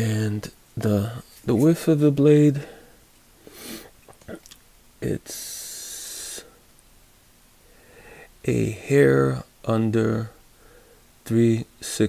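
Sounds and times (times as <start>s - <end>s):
person breathing out: 7.7s - 8.3s, 10.6s - 11.0s.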